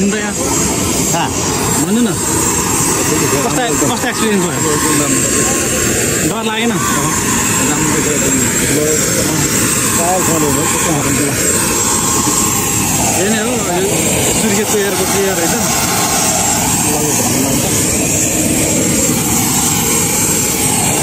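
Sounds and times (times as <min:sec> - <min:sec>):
aircraft turbine engine whine: 0:00.0 - 0:21.0
people's voices: 0:00.0 - 0:21.0.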